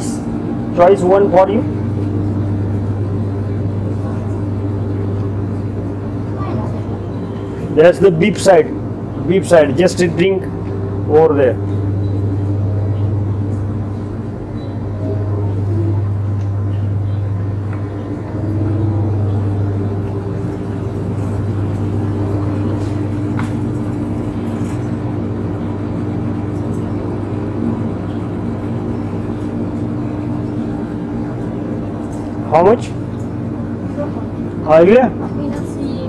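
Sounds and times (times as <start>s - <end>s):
refrigerator electrical hum: 0.0s - 36.0s.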